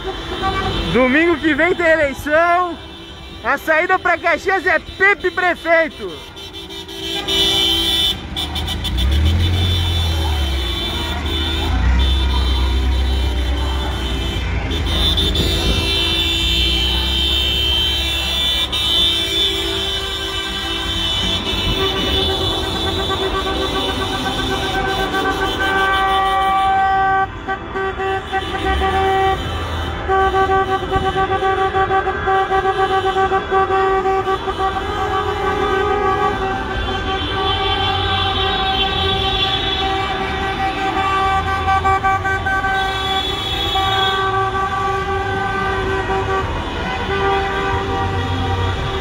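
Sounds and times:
car horns honking: 0.0s - 49.0s.

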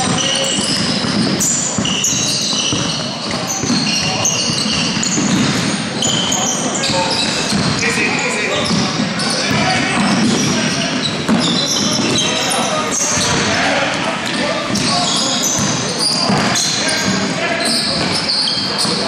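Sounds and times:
basketball bouncing: 0.0s - 7.9s, 8.6s - 12.3s, 14.3s - 17.2s
sneakers squeaking on floor: 0.0s - 19.0s.

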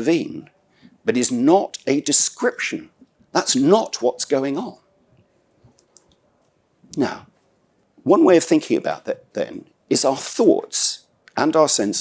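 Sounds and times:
man speaking: 0.0s - 4.9s, 6.9s - 7.3s, 8.0s - 12.0s.

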